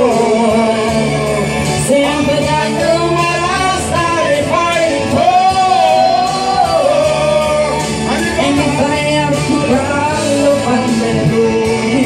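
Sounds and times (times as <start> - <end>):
backing track music: 0.0 - 12.0
woman singing karaoke: 0.0 - 12.0.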